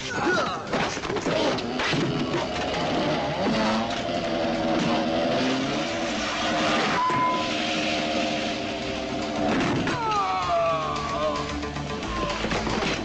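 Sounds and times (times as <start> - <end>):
motorcycle engines running: 1.3 - 6.9, 7.6 - 9.9.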